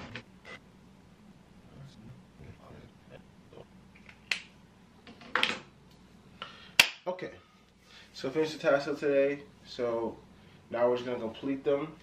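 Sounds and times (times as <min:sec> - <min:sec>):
sharp snap: 0:06.8 - 0:07.1.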